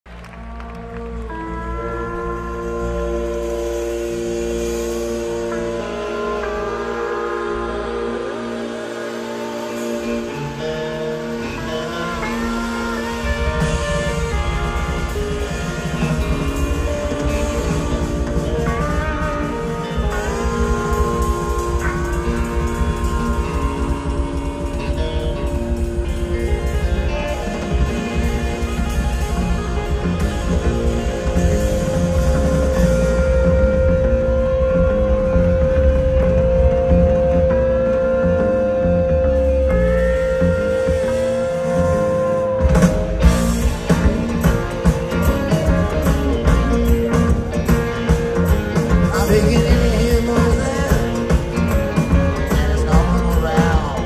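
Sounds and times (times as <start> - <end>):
live band sustained chord: 0.1 - 54.0.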